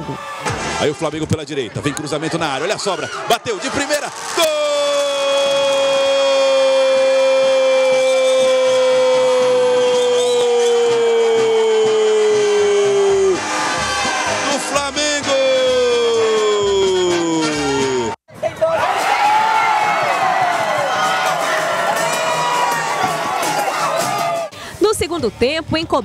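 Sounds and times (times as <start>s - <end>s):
commentator shouting goal: 14.3s - 18.9s.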